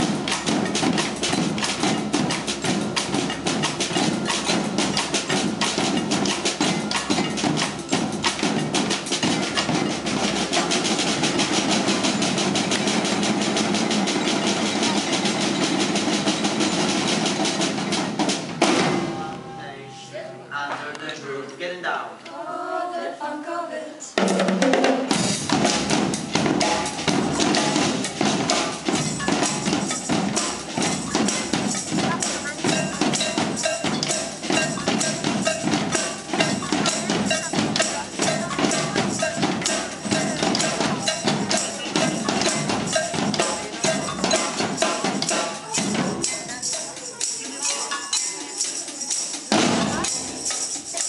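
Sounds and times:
percussion ensemble playing fast rhythm: 0.0s - 21.2s, 24.1s - 51.0s.

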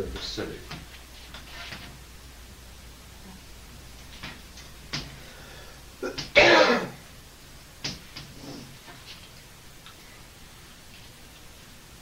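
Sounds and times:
man coughing: 6.0s - 7.0s.

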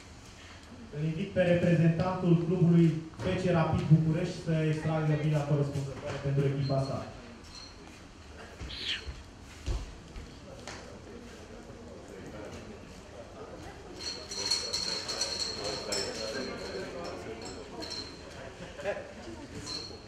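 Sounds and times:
murmur of voices: 8.3s - 9.1s, 10.2s - 20.0s
balls rattling in glass bowl: 14.0s - 17.0s.

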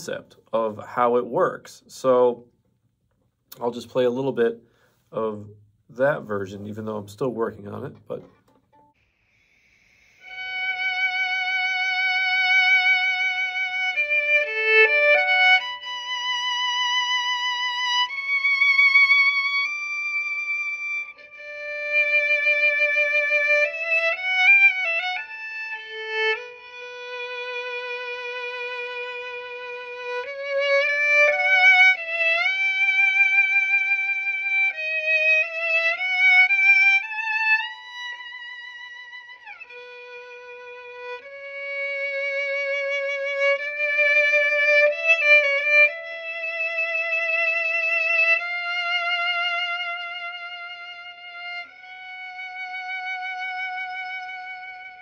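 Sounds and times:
solo violin slow melody: 8.7s - 55.0s.

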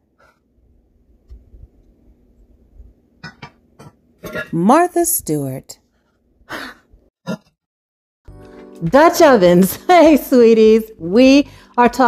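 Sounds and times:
woman clearing throat: 3.2s - 4.6s, 7.2s - 7.6s.

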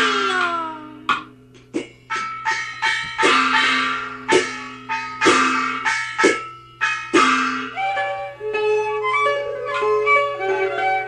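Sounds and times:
gongs and cymbals striking: 0.0s - 8.5s.

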